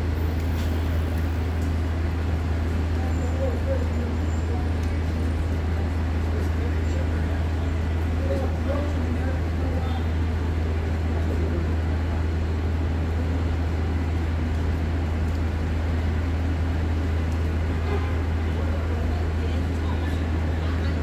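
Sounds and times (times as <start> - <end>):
city street noise: 0.0 - 21.0.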